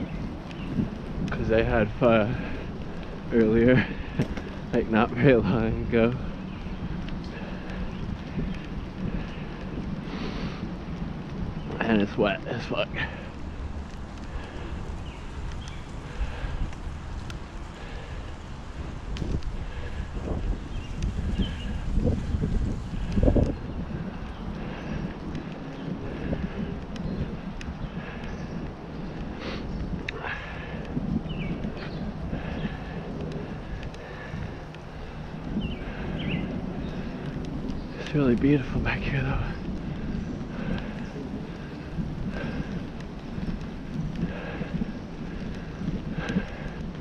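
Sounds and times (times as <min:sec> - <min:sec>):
tyres rumbling on wet pavement: 0:00.0 - 0:47.0
wind buffeting microphone: 0:00.0 - 0:47.0.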